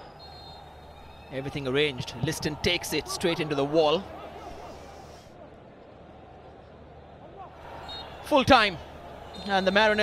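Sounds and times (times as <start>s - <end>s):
commentary: 1.4s - 4.6s
low crowd murmur: 4.0s - 7.9s.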